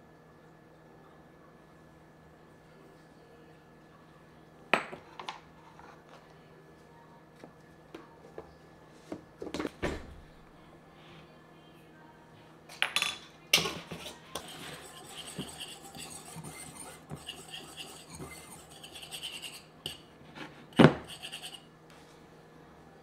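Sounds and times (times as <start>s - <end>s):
whisk clinking in glass bowl: 13.6s - 20.0s.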